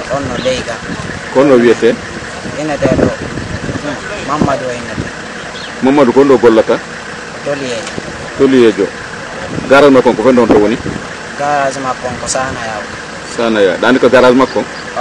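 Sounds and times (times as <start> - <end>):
man speaking: 0.0 - 5.2, 5.8 - 15.0.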